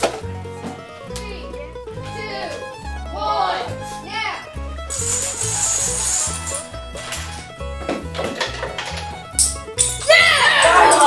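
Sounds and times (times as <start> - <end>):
background music with bass: 0.0 - 11.0.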